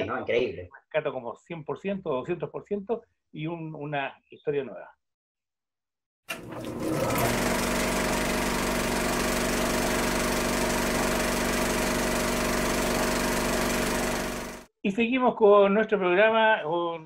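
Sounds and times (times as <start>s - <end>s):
film projector whirring and clattering: 6.3s - 14.7s.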